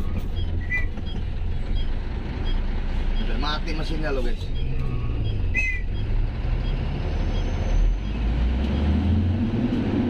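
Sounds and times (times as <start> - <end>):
truck engine rumble from cab: 0.0 - 10.0.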